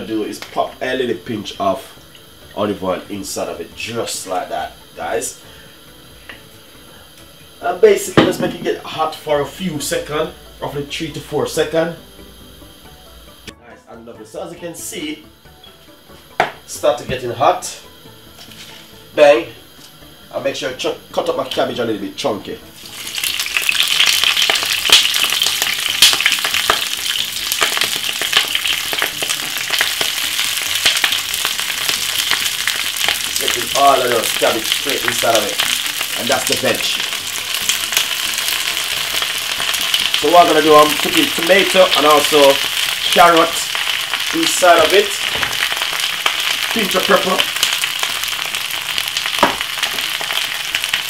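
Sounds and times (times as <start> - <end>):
cabbage sizzling in a frying pan: 0.0 - 13.6, 14.7 - 51.0
knock: 49.4 - 49.6.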